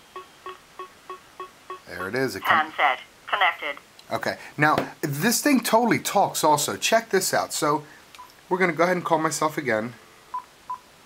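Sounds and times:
short electronic beeps: 0.1s - 1.9s.

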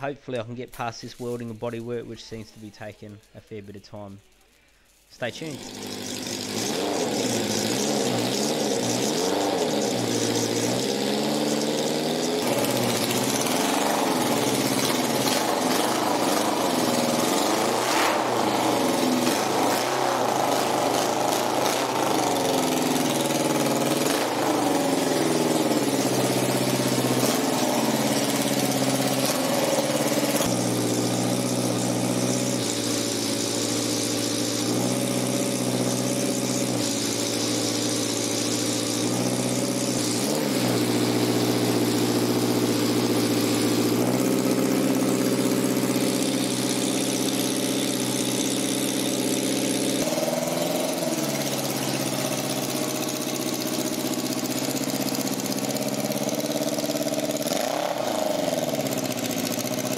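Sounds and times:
motorcycle engine revving: 5.4s - 59.9s.

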